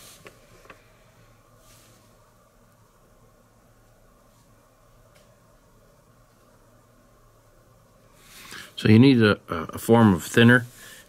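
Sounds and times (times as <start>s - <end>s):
soft rustling: 1.6s - 2.3s.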